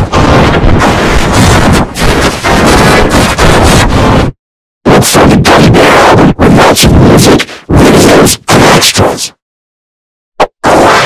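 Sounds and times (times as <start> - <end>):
harsh distorted noise: 0.0 - 9.3, 10.4 - 11.0.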